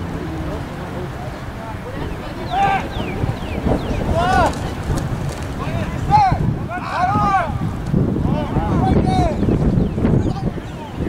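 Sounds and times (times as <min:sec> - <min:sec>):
distant voices shouting: 0:00.0 - 0:11.0
wind buffeting microphone: 0:00.0 - 0:11.0.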